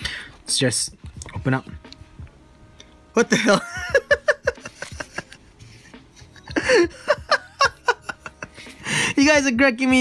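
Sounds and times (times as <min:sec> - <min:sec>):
man laughing: 0:03.2 - 0:09.2.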